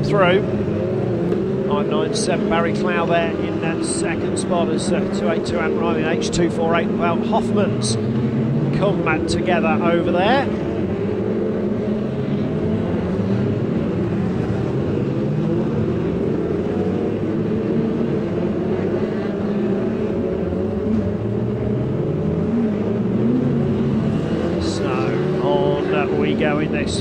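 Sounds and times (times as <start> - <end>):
racing car engines: 0.0 - 27.0.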